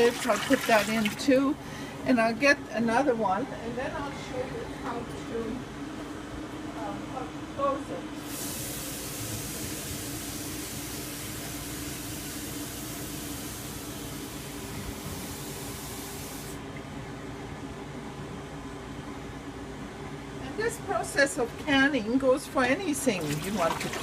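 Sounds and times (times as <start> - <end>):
water running from a kitchen tap: 0.0 - 1.3, 8.2 - 16.6, 23.1 - 24.0.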